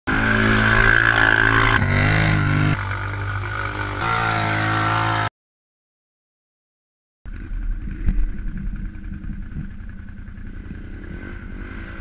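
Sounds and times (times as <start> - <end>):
atv engine revving: 0.1 - 5.3, 7.3 - 12.0.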